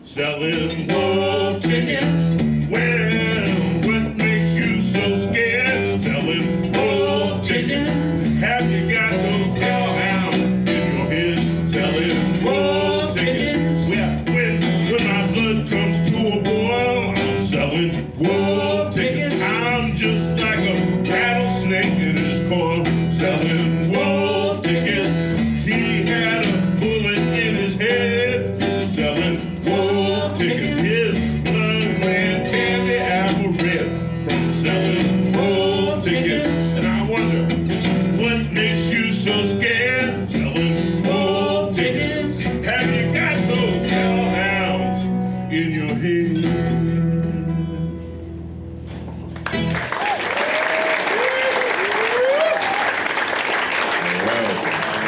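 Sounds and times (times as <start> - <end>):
resonator guitar blues: 0.0 - 50.2.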